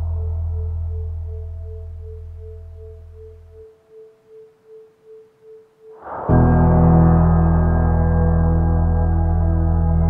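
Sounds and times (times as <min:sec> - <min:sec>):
pulsing tone: 0:00.0 - 0:09.6
faint higher tone: 0:00.0 - 0:10.0
low drone: 0:00.0 - 0:10.0.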